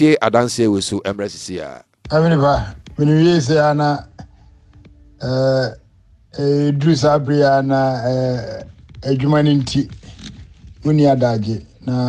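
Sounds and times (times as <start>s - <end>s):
person speaking: 0.0s - 4.3s, 6.4s - 12.0s.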